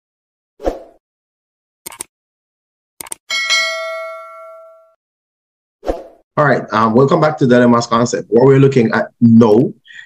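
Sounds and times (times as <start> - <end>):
bell ding: 3.3 - 5.0.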